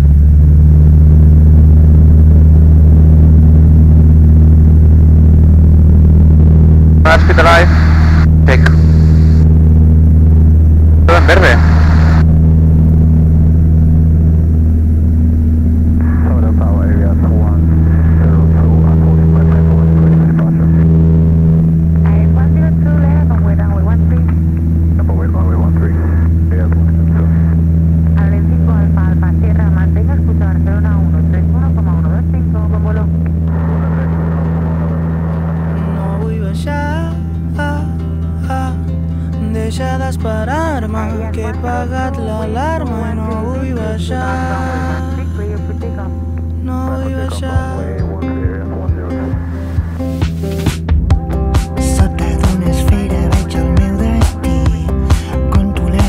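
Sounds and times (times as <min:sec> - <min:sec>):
airplane engine and propeller drone: 0:00.0 - 0:36.7
guitar music: 0:00.0 - 0:56.0
voices: 0:07.0 - 0:09.4, 0:11.1 - 0:12.2, 0:16.0 - 0:21.2, 0:22.0 - 0:37.2, 0:39.6 - 0:50.1.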